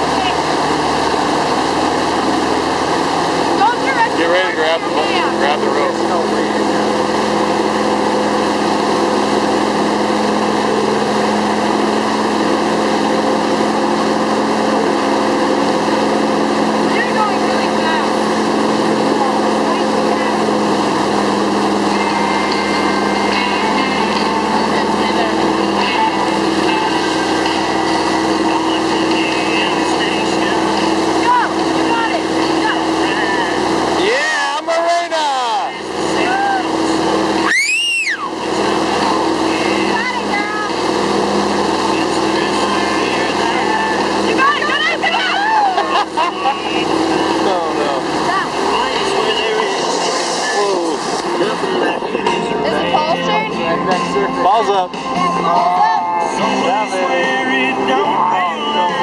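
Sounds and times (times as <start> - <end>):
boat engine running: 0.0 - 59.0
water rushing from wake: 0.0 - 59.0.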